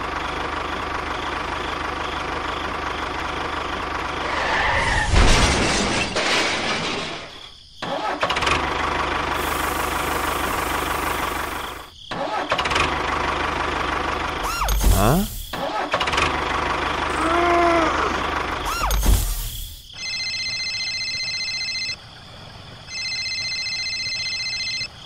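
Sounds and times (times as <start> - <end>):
short voice-like call: 14.5 - 15.5, 17.1 - 18.9.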